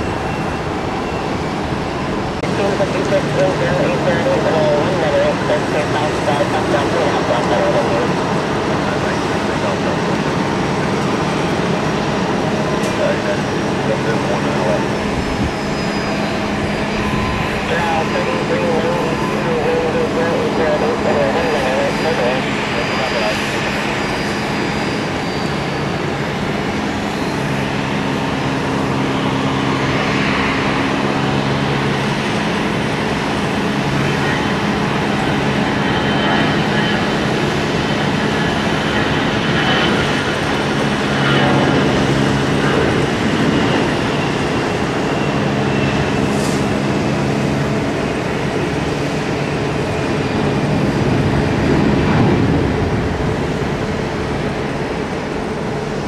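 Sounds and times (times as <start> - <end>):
jet engines running: 0.0 - 56.0
faint high whine: 12.8 - 27.7.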